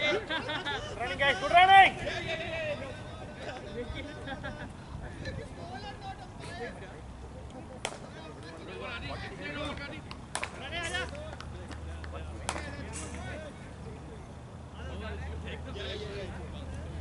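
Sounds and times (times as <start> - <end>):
players talking and calling: 0.0 - 17.0.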